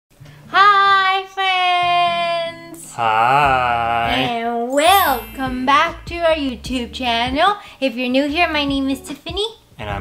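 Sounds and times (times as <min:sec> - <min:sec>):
high singing voice: 0:04.7 - 0:06.2
low backing notes: 0:04.7 - 0:07.6.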